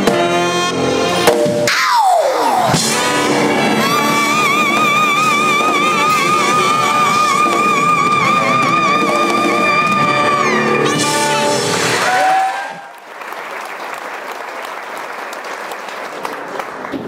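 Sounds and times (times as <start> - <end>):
live band music: 0.0 - 12.8.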